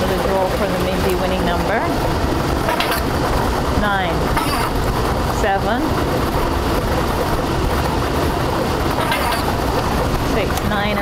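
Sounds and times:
lottery ball machine mixing: 0:00.0 - 0:11.0.

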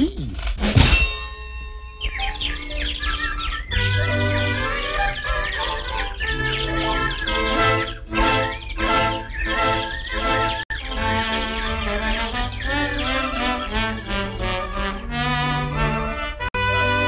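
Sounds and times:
metallic clang: 0:00.6 - 0:02.4
bird-whistle chirps: 0:01.2 - 0:14.2
cartoon orchestral music: 0:02.0 - 0:17.0.

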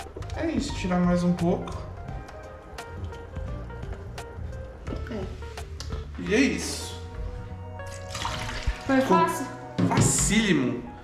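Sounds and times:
background music: 0:00.0 - 0:11.0
water pouring into metal sink: 0:07.8 - 0:09.1.

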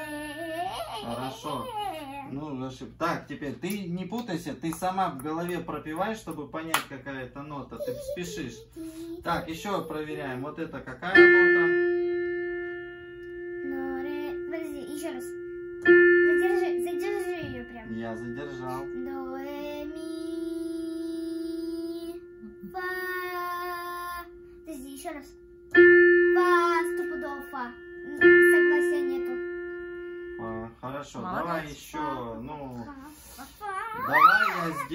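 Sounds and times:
digital piano note: 0:10.9 - 0:32.1.

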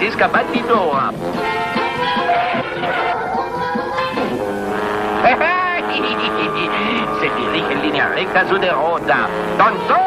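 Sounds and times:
short repeated bursts: 0:00.3 - 0:10.0
droning tones: 0:01.1 - 0:10.0.

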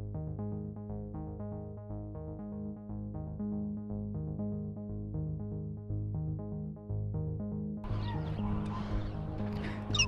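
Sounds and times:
quiet background music: 0:00.0 - 0:10.0
distant geese calling: 0:07.9 - 0:10.0.

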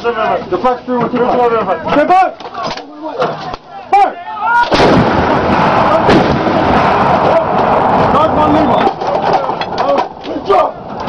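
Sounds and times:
artillery gun firing: 0:04.6 - 0:07.4.

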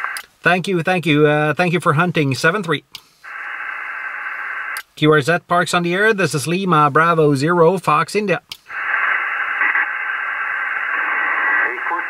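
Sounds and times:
radio receiver hiss: 0:00.0 - 0:00.4, 0:03.0 - 0:05.0, 0:08.5 - 0:12.0.

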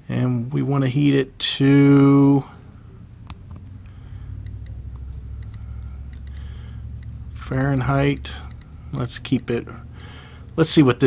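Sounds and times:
thermostat ring clicking: 0:03.2 - 0:10.2.

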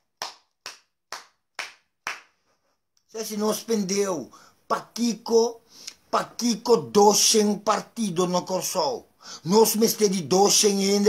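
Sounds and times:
man clapping hands: 0:00.0 - 0:02.4.

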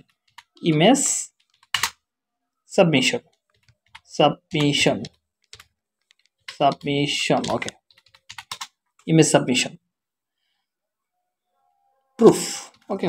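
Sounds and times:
computer keyboard key clicks: 0:01.4 - 0:02.0, 0:04.6 - 0:08.7.

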